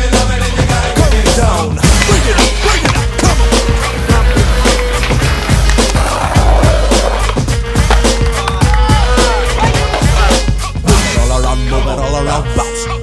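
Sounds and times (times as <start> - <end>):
music with steady beat: 0.0 - 13.0
skateboard wheels rolling on paving: 1.8 - 10.3
skateboard clacking: 1.8 - 10.5.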